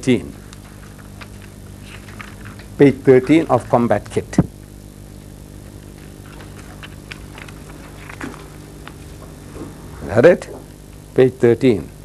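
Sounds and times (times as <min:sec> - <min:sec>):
steady electrical hum: 0:00.0 - 0:12.0
paper pages turning: 0:00.4 - 0:04.2, 0:05.7 - 0:09.7.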